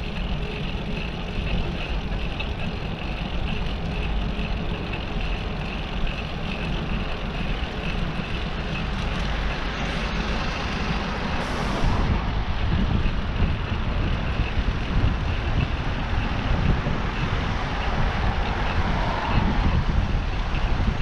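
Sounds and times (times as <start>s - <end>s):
city traffic noise: 0.0s - 21.0s
heavy low rumble: 0.0s - 21.0s.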